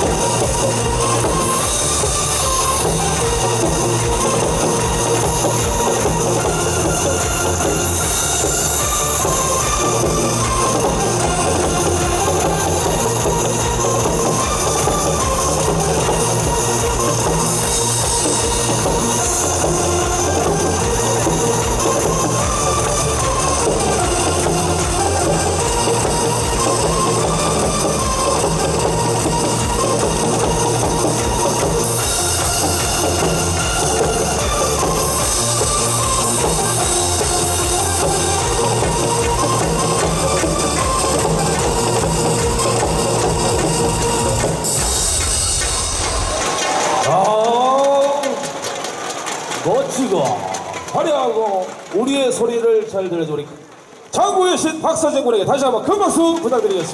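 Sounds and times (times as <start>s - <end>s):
electronic dance backing track: 0.0s - 53.5s.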